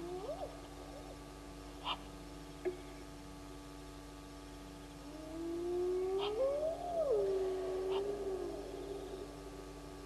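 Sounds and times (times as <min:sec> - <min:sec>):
long rising animal call: 0:05.1 - 0:09.6.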